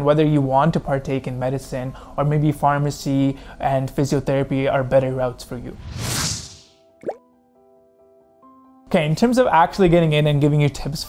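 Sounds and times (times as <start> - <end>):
whoosh: 5.7 - 6.8
short rising pop: 5.8 - 7.2.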